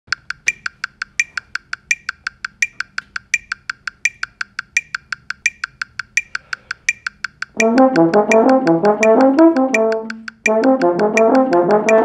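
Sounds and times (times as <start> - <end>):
metronome clicking: 0.1 - 12.0.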